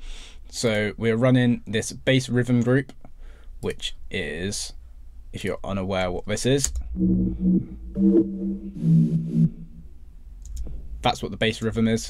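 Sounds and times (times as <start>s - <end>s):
bass synth phrases: 6.8s - 11.1s.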